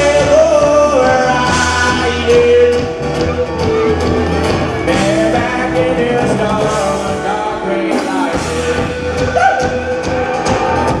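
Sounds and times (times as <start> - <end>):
person singing sliding vocal: 0.0 - 3.1, 4.8 - 10.1
bass: 0.0 - 11.0.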